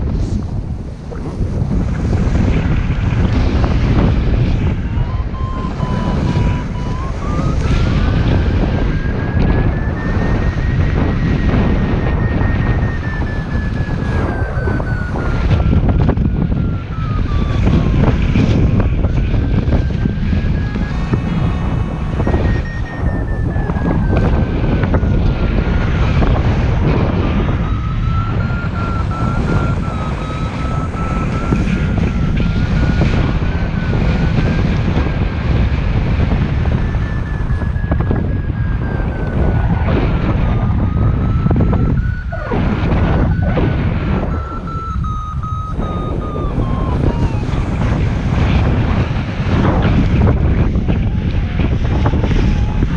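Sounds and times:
wind rushing over microphone: 0.0s - 52.9s
variometer tone sliding in pitch: 3.6s - 34.9s, 35.9s - 52.9s.

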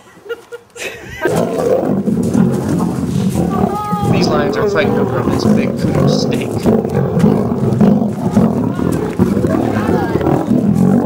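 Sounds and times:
lions growling: 1.2s - 11.0s.

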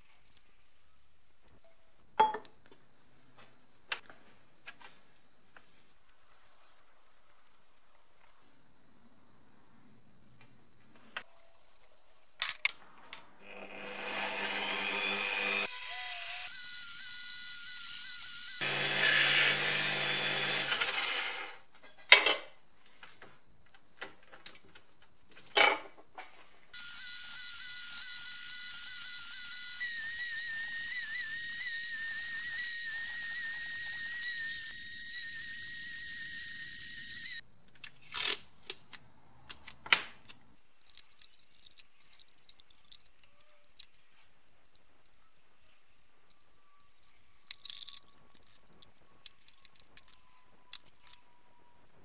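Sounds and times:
metal parts clicking and knocking: 47.4s - 51.3s.

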